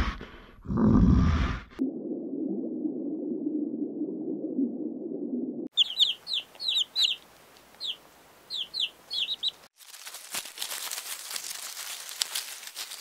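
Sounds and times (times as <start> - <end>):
chicks peeping: 5.7 - 7.2, 7.8 - 9.6
rustle of wood-shaving bedding: 9.8 - 13.0.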